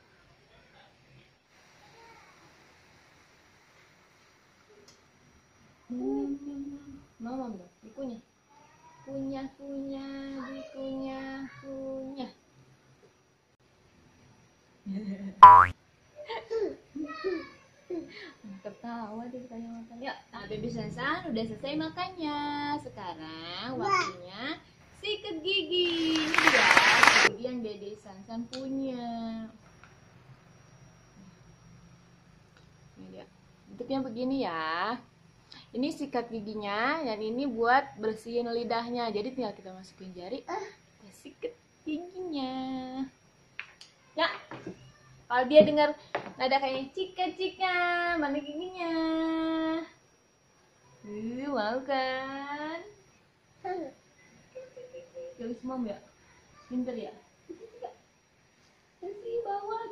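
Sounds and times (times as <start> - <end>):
cartoon boing twang: 15.4 - 15.7.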